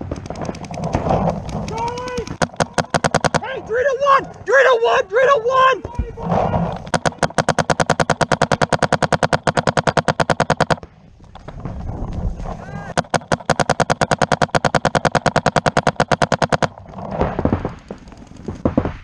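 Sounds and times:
paintball marker rapid shots: 0.0s - 3.5s, 6.7s - 10.9s, 12.9s - 16.8s
person speaking: 1.6s - 8.8s.

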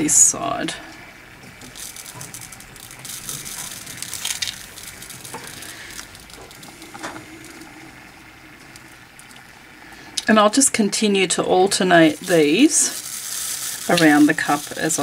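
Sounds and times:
glitter sprinkling with soft hiss: 1.6s - 10.2s, 11.7s - 15.0s.

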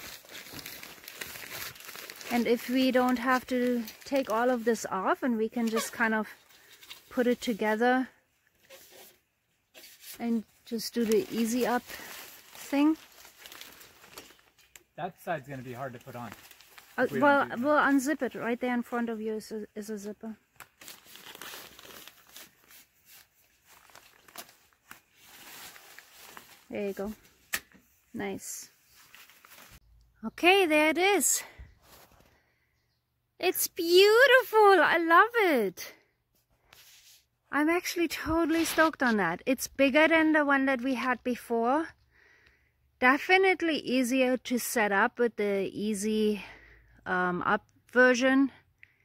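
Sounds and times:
fabric crinkling and rustling: 0.0s - 4.9s, 8.6s - 18.2s, 20.2s - 27.4s, 28.7s - 29.8s.

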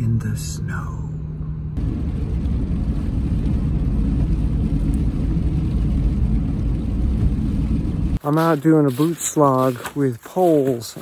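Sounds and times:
low hum: 0.0s - 8.2s
car driving on wet road: 1.8s - 8.2s.

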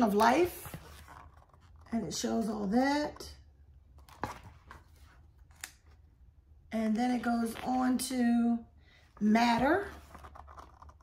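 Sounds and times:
book pages rustling: 0.0s - 1.9s, 3.9s - 6.0s, 9.4s - 11.0s.

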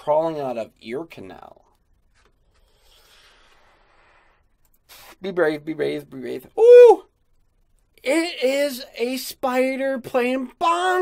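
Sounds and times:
faint soft hiss: 0.0s - 11.0s.

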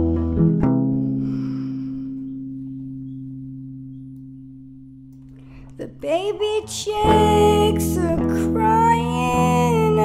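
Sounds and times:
guitar and bass chord ringing: 0.0s - 5.6s.

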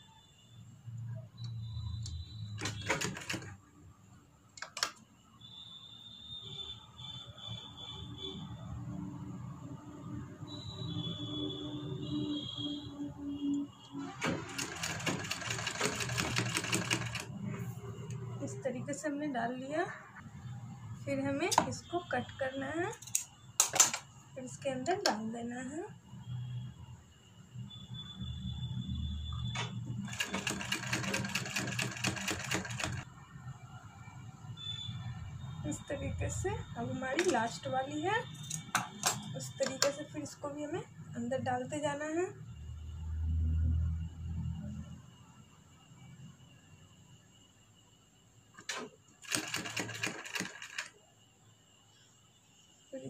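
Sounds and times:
sewing machine stitching: 2.5s - 3.6s, 14.0s - 17.3s, 29.5s - 33.0s, 48.6s - 50.9s.

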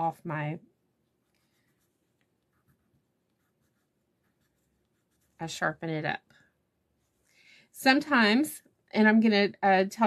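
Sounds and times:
crayon scratching on paper: 1.2s - 5.7s.

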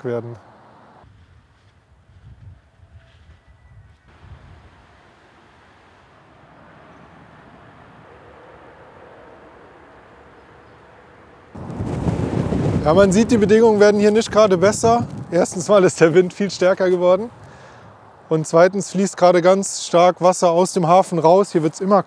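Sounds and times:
wind gusts: 0.0s - 20.4s
wind buffeting microphone: 1.0s - 5.0s, 11.6s - 18.0s.

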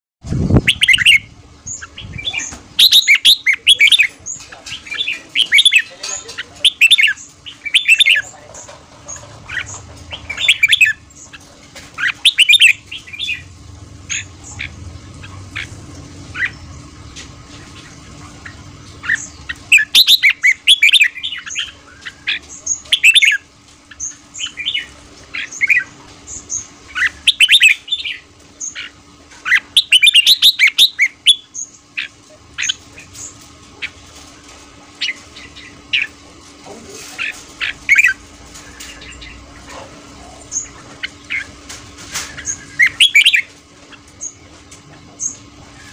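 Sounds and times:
bird singing whistled notes: 19.1s - 21.8s.

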